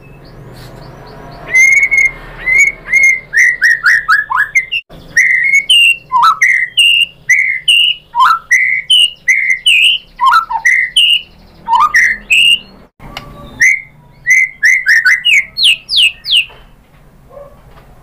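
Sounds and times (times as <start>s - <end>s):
bird singing whistled notes: 0.0s - 16.7s.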